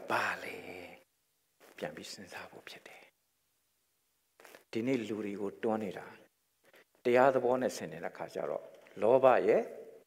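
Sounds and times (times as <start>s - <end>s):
man speaking softly: 0.0s - 1.0s, 1.7s - 3.2s.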